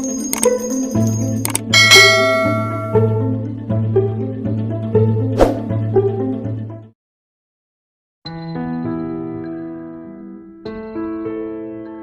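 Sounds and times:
bright bell ding: 0:00.0 - 0:03.3
background music: 0:00.0 - 0:06.9, 0:08.3 - 0:12.0.

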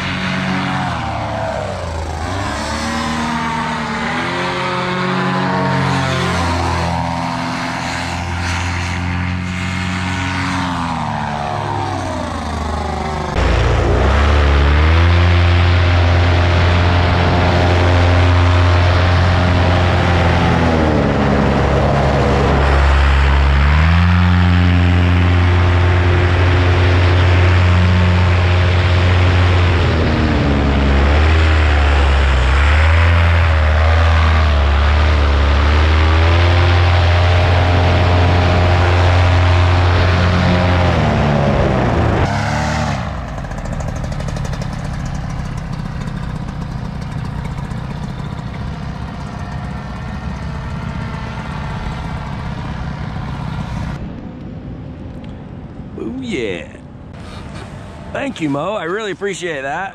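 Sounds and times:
paramotor engine and propeller: 0:00.0 - 0:59.9.

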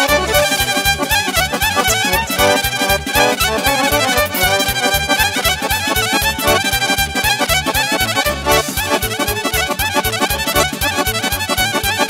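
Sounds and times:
fast instrumental dance tune: 0:00.0 - 0:12.0.

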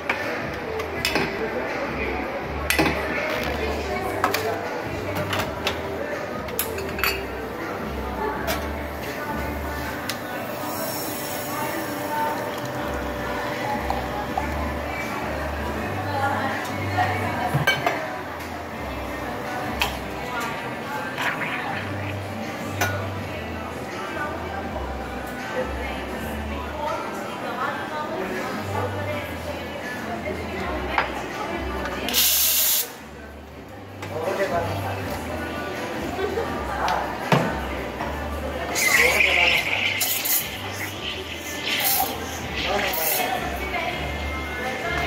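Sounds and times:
espresso machine pump running: 0:09.3 - 0:15.8, 0:38.8 - 0:43.4.

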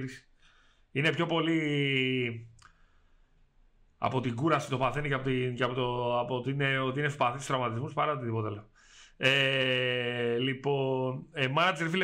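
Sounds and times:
man talking: 0:00.0 - 0:00.3, 0:00.9 - 0:02.7, 0:04.0 - 0:12.0.

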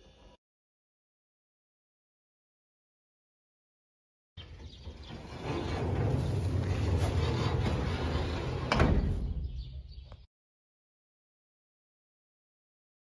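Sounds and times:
metal sliding door rumbling: 0:04.4 - 0:09.8.

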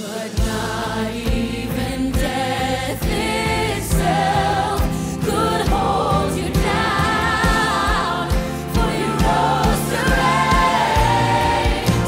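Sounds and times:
choir singing: 0:00.0 - 0:12.0.

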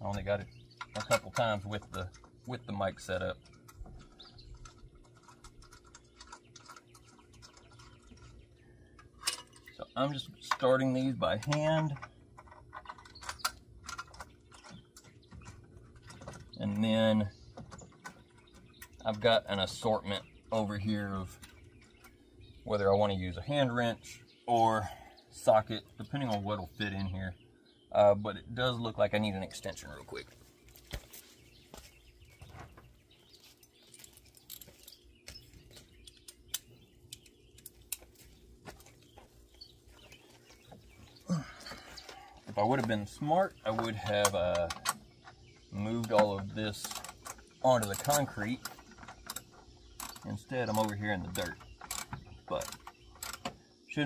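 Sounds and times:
birds chirping faintly: 0:00.0 - 0:54.0
small metallic clicks: 0:03.4 - 0:09.8, 0:10.4 - 0:16.9, 0:33.6 - 0:39.7, 0:46.0 - 0:53.6.

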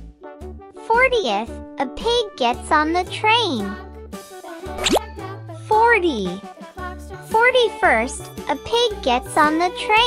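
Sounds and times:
light children's music: 0:00.0 - 0:10.0.

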